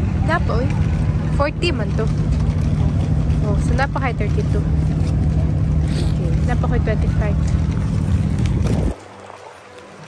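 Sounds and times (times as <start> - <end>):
voices talking: 0.0 - 9.0
engine running: 0.0 - 10.0.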